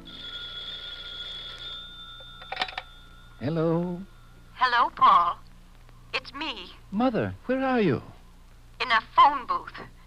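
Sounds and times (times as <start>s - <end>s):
telephone bell ringing: 0.0s - 5.4s.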